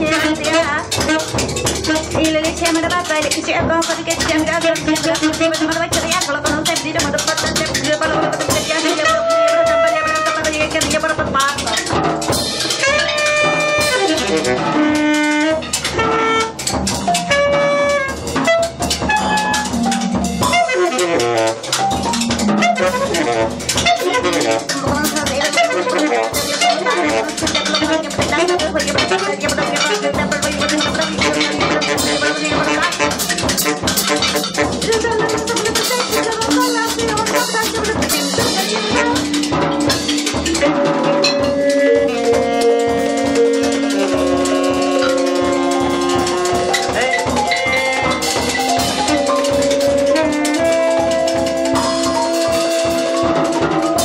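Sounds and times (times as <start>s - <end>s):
saxophone: 0.0s - 2.5s, 8.4s - 10.6s, 11.7s - 54.0s
bass marimba: 0.0s - 54.0s
drum kit with busy cymbals: 0.0s - 54.0s.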